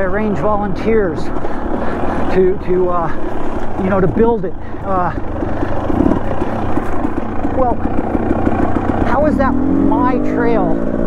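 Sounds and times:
dirt bike engine chugging: 0.0 - 11.0.

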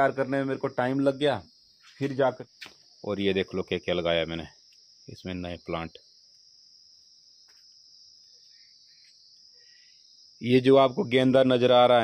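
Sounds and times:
insect chirring: 0.0 - 12.0.

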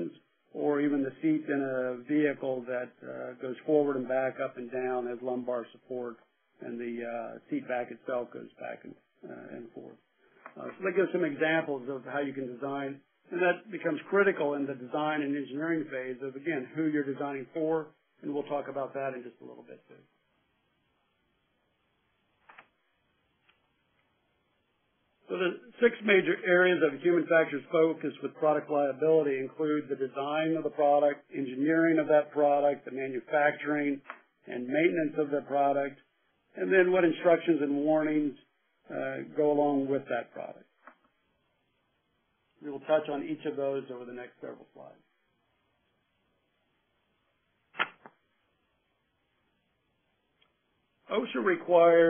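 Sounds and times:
short sharp noise: 47.7 - 48.1.

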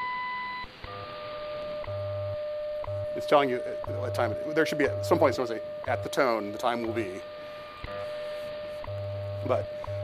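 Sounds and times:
low buzzing hum: 0.0 - 10.0
steady lower tone with ticks: 0.0 - 10.0.

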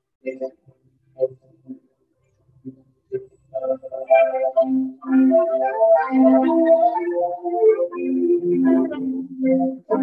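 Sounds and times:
slow keyboard melody: 2.6 - 10.0.

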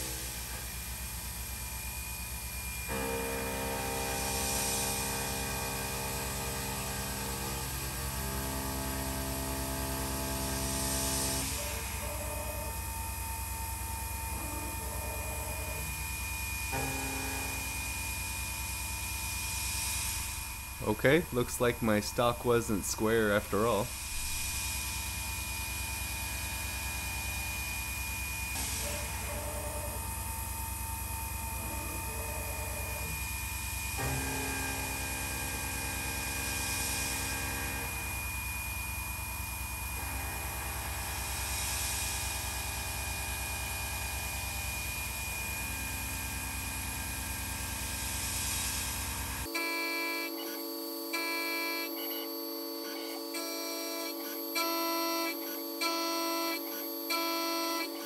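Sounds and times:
milling machine cutting metal: 2.5 - 58.0.

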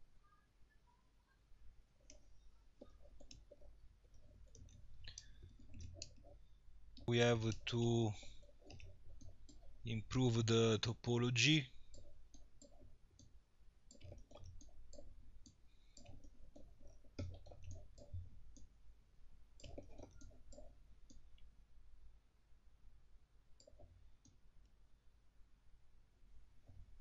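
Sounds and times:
faint computer mouse clicking: 2.0 - 7.6, 8.2 - 9.7, 11.8 - 18.7, 19.6 - 21.5, 23.6 - 24.8.

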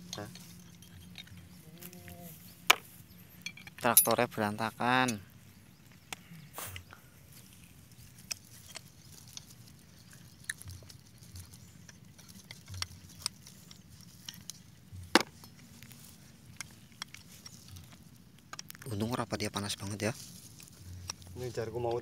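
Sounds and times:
hand tools tapping on metal: 0.0 - 1.7, 2.6 - 5.3, 8.1 - 22.0.

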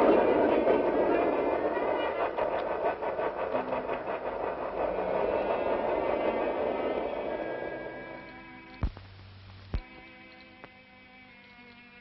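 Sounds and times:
wheels clattering over rail joints: 0.0 - 8.6
train running: 0.0 - 12.0.

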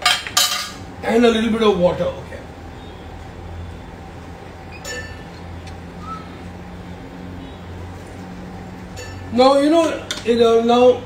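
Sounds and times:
steady low hum: 0.0 - 11.0
light clink of metal or glass: 4.8 - 5.2, 9.0 - 9.3.

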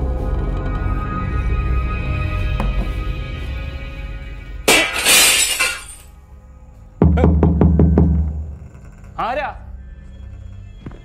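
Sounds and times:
glass breaking crash: 4.7 - 6.1
deep boom: 7.0 - 8.7.

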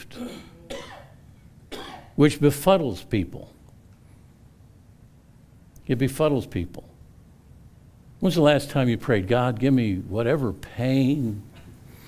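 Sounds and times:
person coughing: 0.0 - 2.2.

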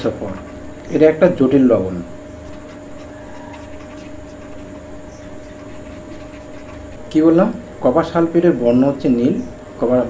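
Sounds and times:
steady background hum: 0.0 - 10.0
marker scratching on paper: 0.2 - 1.3, 2.2 - 8.3.

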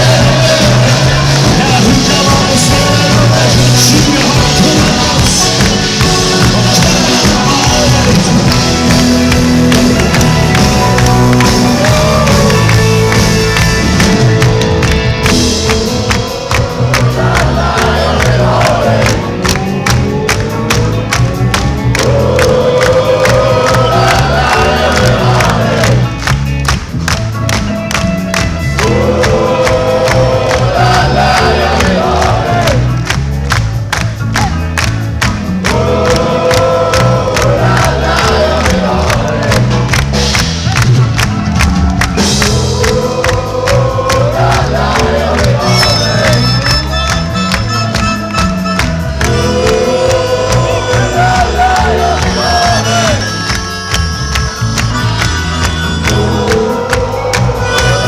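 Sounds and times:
person singing: 0.0 - 26.3, 28.6 - 33.0, 35.6 - 39.9, 42.2 - 58.0
crowd voices: 0.0 - 27.0, 28.6 - 58.0
live rock band playing: 0.0 - 58.0
hand-clapping: 0.1 - 58.0.

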